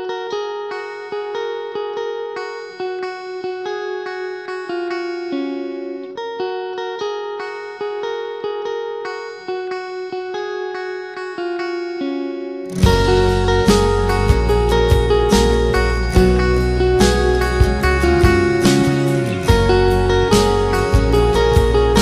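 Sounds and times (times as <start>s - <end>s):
clean guitar arpeggio: 0.0s - 22.0s.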